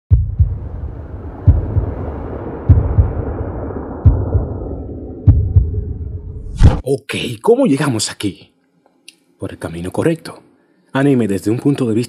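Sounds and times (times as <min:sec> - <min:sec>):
deep heartbeat-like thumps: 0:00.1 - 0:06.8
low rumble: 0:00.1 - 0:06.8.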